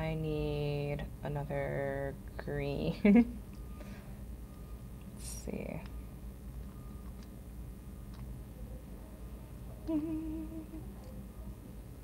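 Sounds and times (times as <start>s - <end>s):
closed-mouth hummed laugh: 9.8s - 11.0s.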